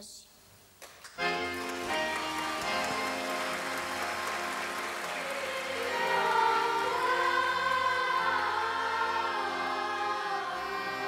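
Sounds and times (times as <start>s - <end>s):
applause: 0.8s - 7.0s
musical accompaniment: 1.1s - 11.0s
choir singing sustained notes: 1.9s - 11.0s.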